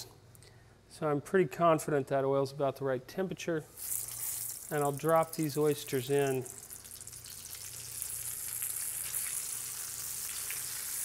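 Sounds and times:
oysters sizzling in hot oil: 3.8s - 11.0s.

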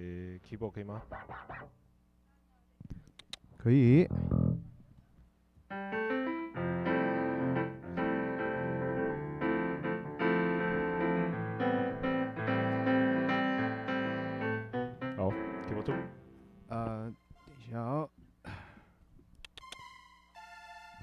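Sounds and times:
keyboard playing piano chords: 4.1s - 4.8s, 5.7s - 18.0s.

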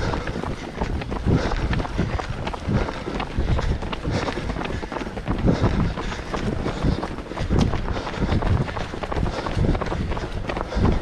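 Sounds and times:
running footsteps on tarmac: 0.0s - 11.0s.

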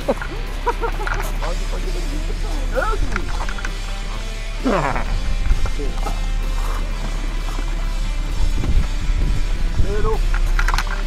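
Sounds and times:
indistinct voices talking: 0.0s - 11.0s
music: 0.0s - 11.0s.

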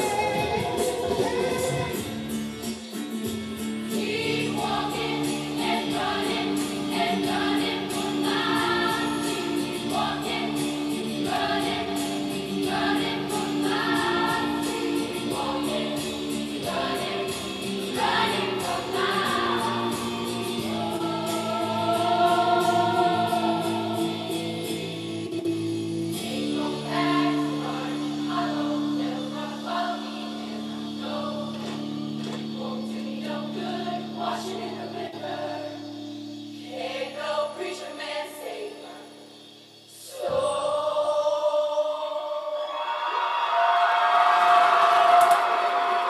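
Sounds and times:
choir singing in harmony: 0.0s - 2.2s, 3.8s - 25.3s, 26.1s - 46.0s.

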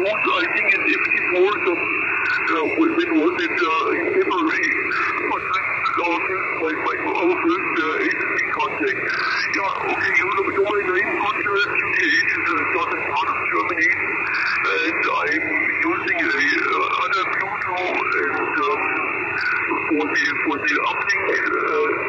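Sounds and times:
radio-filtered speech: 0.0s - 22.0s
steady radio hiss: 0.0s - 22.0s.

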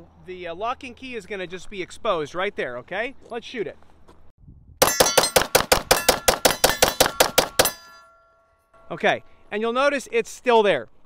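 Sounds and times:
pistol firing rapidly: 4.8s - 7.8s.

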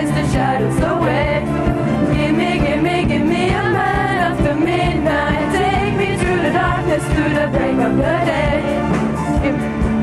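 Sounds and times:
voices singing: 0.0s - 9.0s
live pop band playing: 0.0s - 10.0s.

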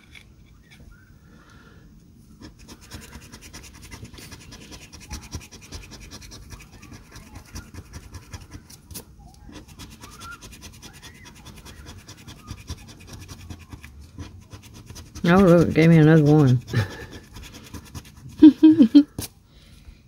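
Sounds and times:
coin scratching lottery ticket: 2.4s - 19.3s.

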